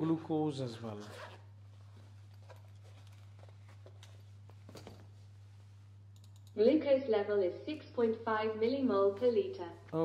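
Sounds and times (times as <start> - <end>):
steady low hum: 0.0 - 10.0
small clicks: 6.2 - 6.6.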